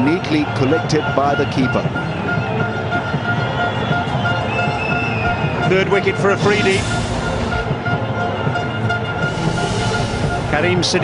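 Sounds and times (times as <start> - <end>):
music playing: 0.0 - 11.0
stadium crowd noise: 0.0 - 11.0.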